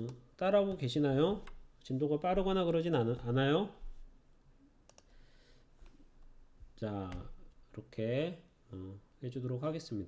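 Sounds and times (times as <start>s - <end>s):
computer mouse clicks: 4.8s - 5.1s.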